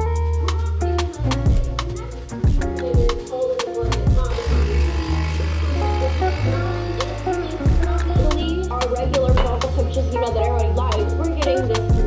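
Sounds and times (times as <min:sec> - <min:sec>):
music with bass and drum beat: 0:00.0 - 0:12.0
espresso machine pump buzzing: 0:04.3 - 0:08.0.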